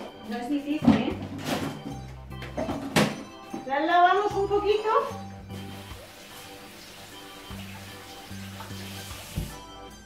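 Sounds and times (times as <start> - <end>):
background music with bass line: 0.0 - 10.0
tap water running into sink: 5.5 - 9.7.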